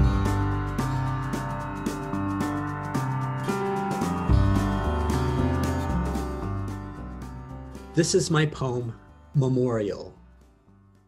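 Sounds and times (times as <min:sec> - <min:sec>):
slow instrumental music: 0:00.0 - 0:11.0.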